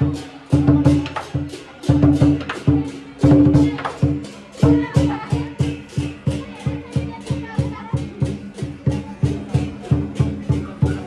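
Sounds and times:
big drum beating: 0.0 - 11.0.

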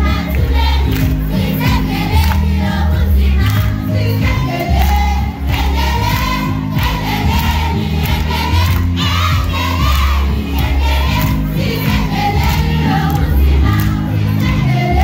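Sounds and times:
amplified music with heavy bass: 0.0 - 15.0
children singing along: 0.0 - 15.0.

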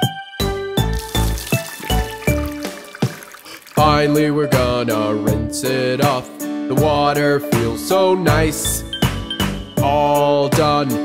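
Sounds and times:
person singing: 3.6 - 8.8, 9.8 - 11.0
children's song backing music: 3.8 - 11.0.

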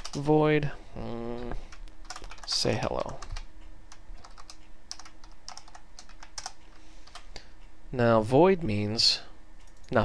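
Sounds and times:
typing on computer keyboard: 1.7 - 7.2.

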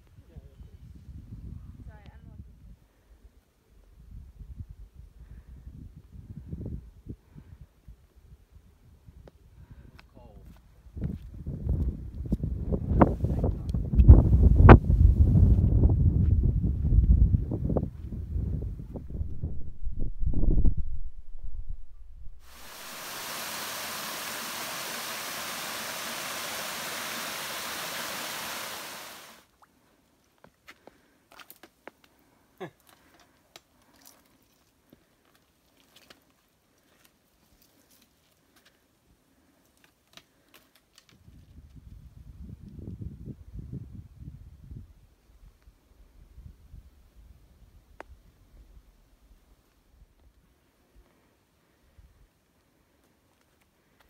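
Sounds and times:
wind buffeting microphone: 10.9 - 23.0, 41.2 - 45.0
waterfall cascading over rocks: 22.4 - 29.4.

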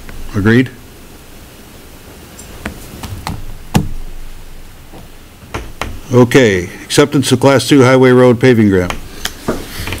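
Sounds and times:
faint room hum: 0.0 - 10.0.

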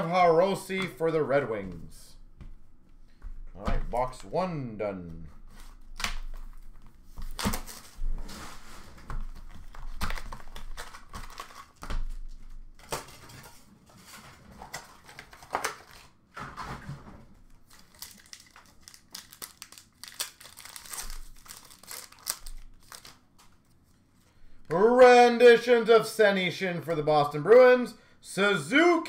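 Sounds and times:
plastic wrapping crinkling and tearing: 5.5 - 16.2, 17.6 - 23.8.

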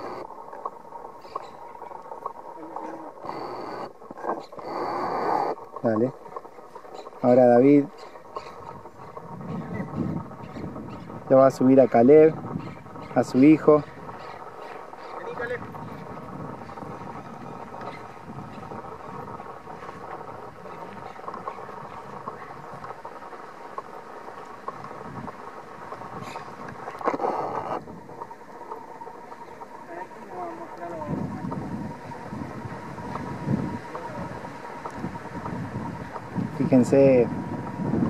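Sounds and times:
steady low hum: 0.0 - 38.0
wind rumbling on microphone: 0.0 - 38.0
faint voices: 28.6 - 35.2.

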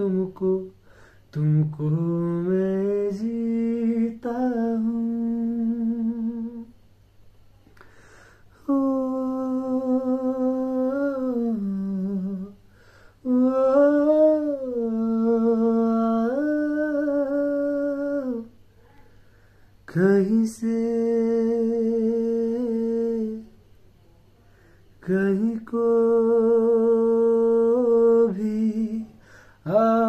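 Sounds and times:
man humming a melody: 0.0 - 6.7, 8.6 - 12.6, 13.2 - 18.6
man breathing: 0.8 - 1.3, 7.8 - 8.6, 12.6 - 13.2, 19.0 - 19.8, 24.4 - 25.0, 29.1 - 29.7.

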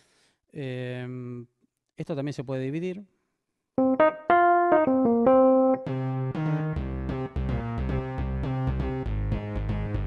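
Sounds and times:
synthesizer keyboard notes: 3.8 - 9.0.

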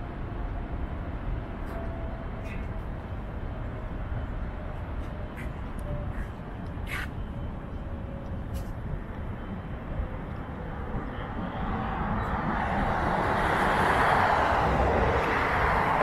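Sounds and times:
passing vehicle rushing: 10.9 - 16.0.

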